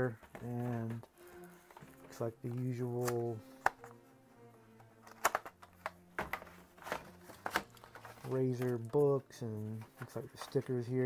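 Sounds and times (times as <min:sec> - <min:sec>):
paper rustling: 0:05.1 - 0:11.0.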